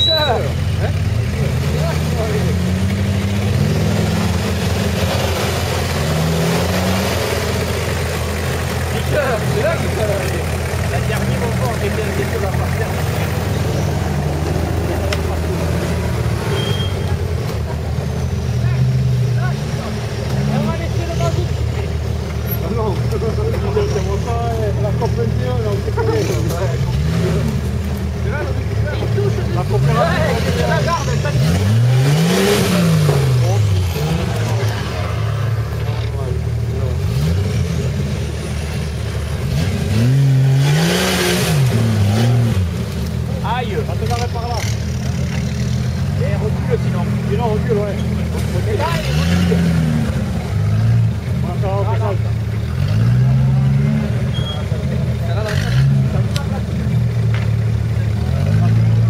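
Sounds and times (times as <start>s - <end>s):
indistinct voices talking: 0.0s - 59.0s
off-road engines revving: 0.0s - 59.0s.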